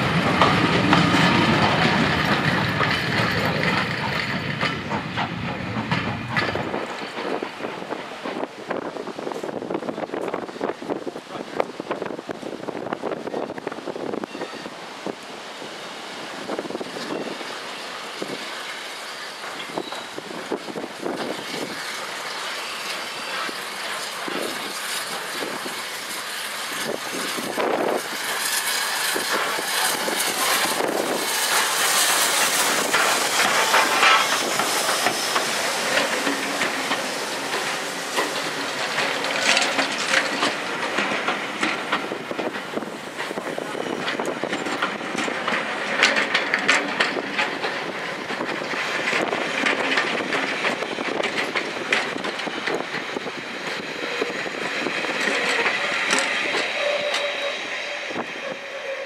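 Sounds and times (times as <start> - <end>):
steam train approaching: 0.0 - 59.0
train wheels clicking over rail joints: 0.0 - 59.0.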